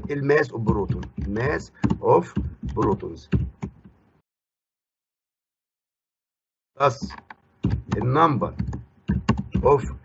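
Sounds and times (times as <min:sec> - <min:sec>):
person talking: 0:00.0 - 0:03.4, 0:06.8 - 0:07.2, 0:07.9 - 0:10.0
keyboard keys clicking: 0:07.0 - 0:09.9.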